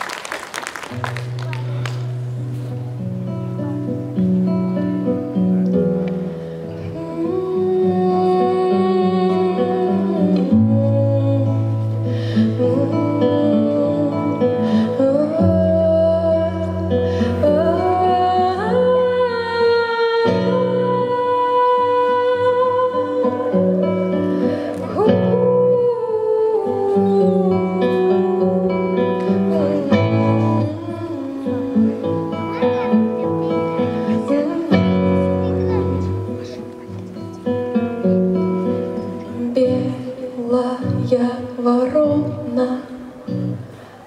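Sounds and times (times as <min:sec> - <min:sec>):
girl singing into a microphone: 0:06.6 - 0:36.9, 0:38.9 - 0:43.9.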